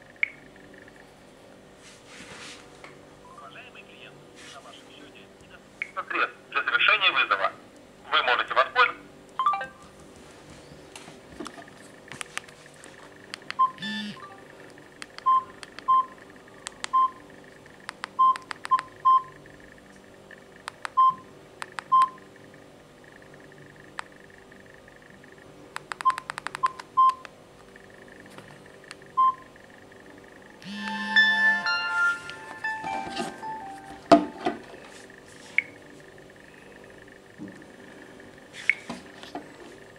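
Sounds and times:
phone keypad beeps with clicks: 9.4s - 9.8s, 13.5s - 14.3s, 15.1s - 16.1s, 16.8s - 17.2s, 18.0s - 19.3s, 20.8s - 22.2s, 25.8s - 27.3s, 30.6s - 33.8s
phone buzz: 13.6s - 14.4s, 30.6s - 34.9s
run of higher tones: 30.5s - 34.4s.

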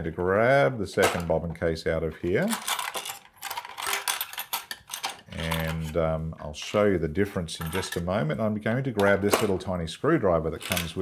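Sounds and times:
plastic accessories clicking in a box: 2.4s - 5.8s, 10.6s - 11.0s.

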